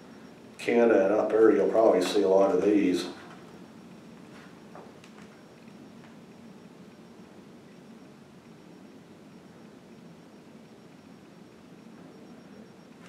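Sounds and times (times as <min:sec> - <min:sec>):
faint room hiss: 0:00.0 - 0:13.0
thin high steady tone: 0:00.0 - 0:13.0.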